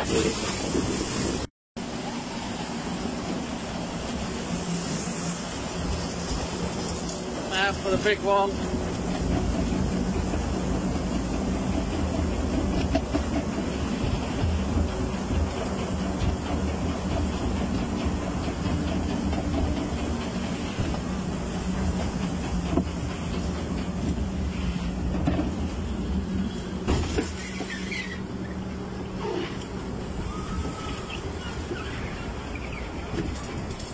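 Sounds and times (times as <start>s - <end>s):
conveyor mechanical rumble and hum: 1.8s - 33.9s.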